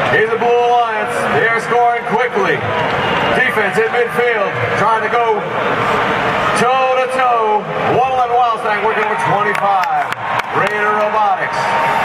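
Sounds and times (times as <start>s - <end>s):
crowd noise: 0.0s - 12.0s
announcer amplified voice: 0.1s - 2.7s, 3.3s - 5.5s, 6.5s - 11.7s.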